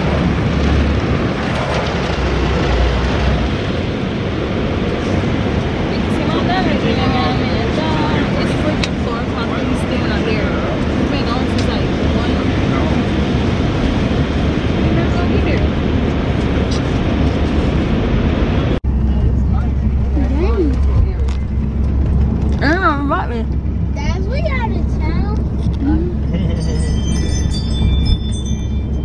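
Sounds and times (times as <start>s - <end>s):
low engine rumble: 0.0s - 29.0s
road and wind noise in car: 0.0s - 29.0s
voices talking: 5.6s - 17.0s, 18.9s - 28.0s.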